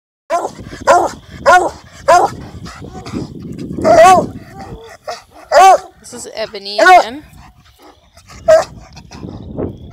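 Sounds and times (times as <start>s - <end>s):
dog barking: 0.3s - 3.1s, 3.8s - 6.0s, 6.8s - 7.2s, 7.8s - 8.9s.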